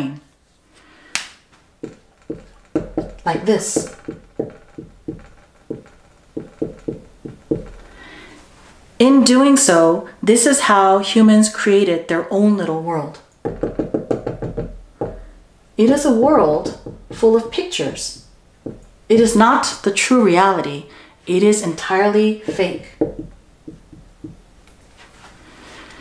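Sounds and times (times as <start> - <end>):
marker tapping on glass whiteboard: 1.8 - 8.0, 13.4 - 19.8, 22.4 - 24.4.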